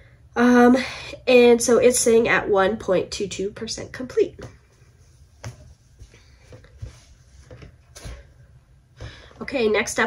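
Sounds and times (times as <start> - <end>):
fabric rustling: 4.6 - 8.4.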